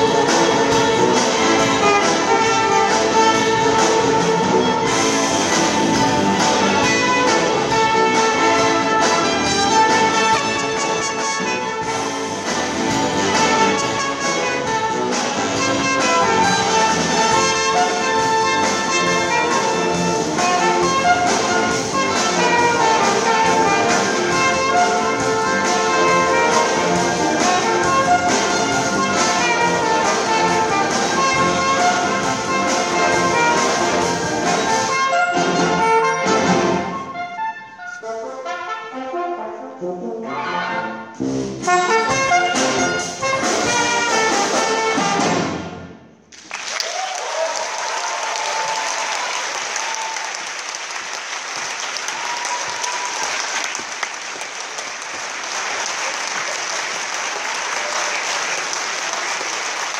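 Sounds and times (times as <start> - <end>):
brass solo: 0.0 - 46.0
symphony orchestra playing: 0.0 - 46.8, 47.6 - 59.9
audience applauding: 46.3 - 59.9.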